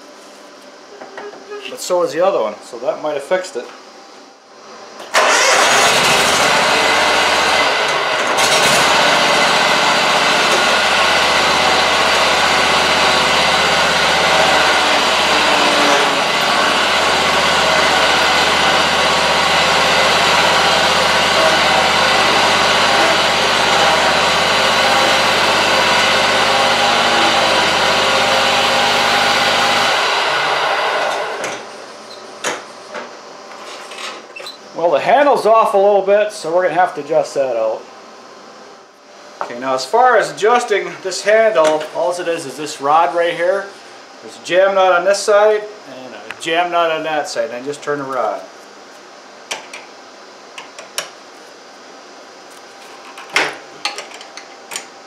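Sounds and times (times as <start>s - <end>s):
mower engine running: 5.1s - 31.4s.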